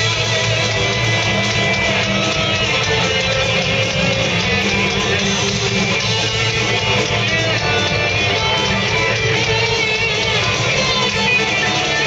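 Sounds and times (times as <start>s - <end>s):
bass guitar: 0.0s - 12.0s
drums: 0.0s - 12.0s
electric guitars: 0.0s - 12.0s
punk rock band playing live: 0.0s - 12.0s.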